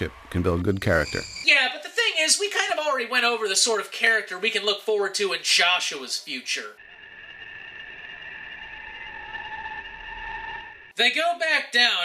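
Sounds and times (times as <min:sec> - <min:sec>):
high droning tones: 0:06.8 - 0:10.9
low rumble: 0:06.8 - 0:10.9.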